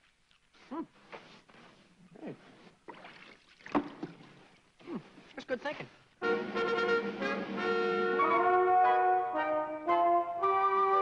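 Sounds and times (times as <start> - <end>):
brush swishing on wooden boards: 0.6 - 2.8.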